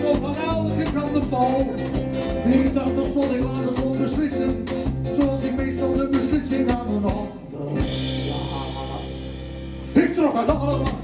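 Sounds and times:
live band playing: 0.0 - 11.0.

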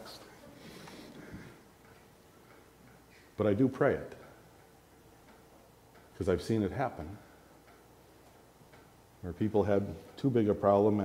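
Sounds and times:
man speaking: 0.0 - 0.5, 3.4 - 4.4, 6.2 - 7.3, 9.2 - 11.0
faint steady hum: 0.0 - 11.0.

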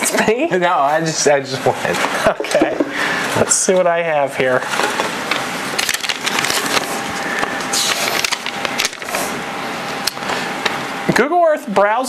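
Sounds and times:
paper slips rustling: 4.6 - 9.4.

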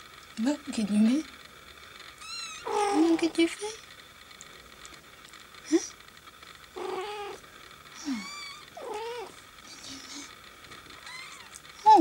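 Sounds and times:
kitten mewing: 2.2 - 3.2, 8.0 - 9.4.

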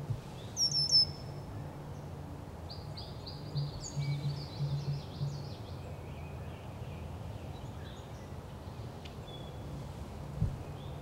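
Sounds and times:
songbird chirps: 0.2 - 2.1, 2.7 - 9.7, 10.6 - 11.0.

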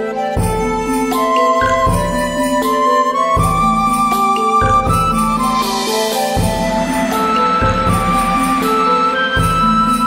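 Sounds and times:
slow instrumental background music: 0.0 - 10.0.

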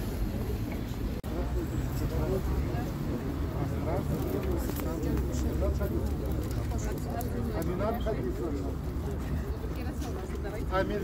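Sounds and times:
people talking indistinctly: 0.3 - 11.0.

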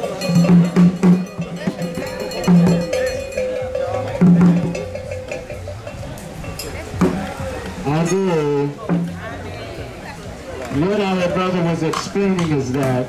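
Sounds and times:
metal bell ringing: 0.0 - 7.0
sharp higher drum hits: 0.0 - 7.4
deep drum strokes: 0.0 - 11.0.

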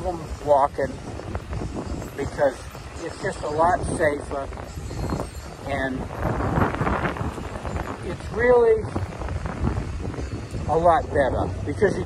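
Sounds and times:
street traffic noise: 0.0 - 12.0
wind buffeting microphone: 0.0 - 12.0.

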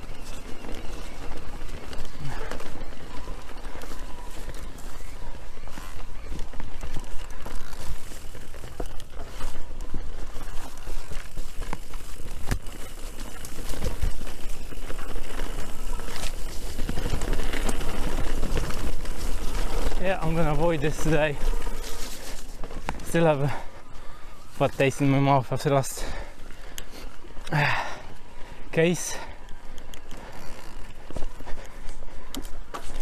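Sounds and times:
tyre noise on dirt: 0.0 - 33.0
bike clattering over bumps: 0.2 - 23.2.

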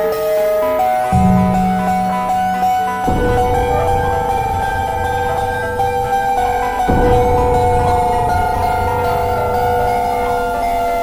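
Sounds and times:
ambient drone music: 0.0 - 11.0
low rumble: 1.2 - 6.5.

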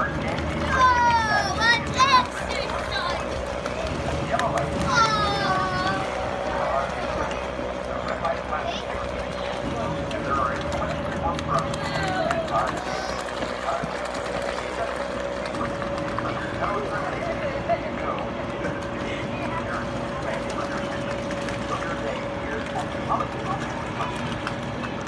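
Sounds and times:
background chatter of voices: 0.0 - 25.0
steady hum: 0.0 - 25.0.

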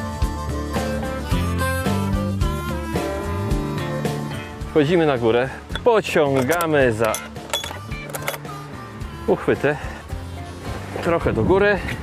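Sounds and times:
latch clicks and rattles: 5.7 - 8.5.

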